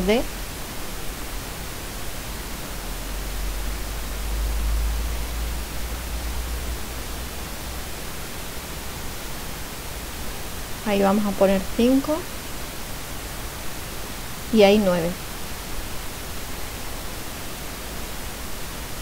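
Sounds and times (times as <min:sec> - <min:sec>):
recording hiss: 0:00.0 - 0:19.0.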